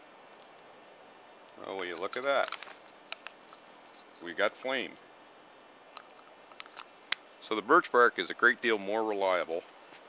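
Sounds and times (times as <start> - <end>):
quiet hiss: 0.0 - 10.0
small flame crackling: 0.0 - 10.0.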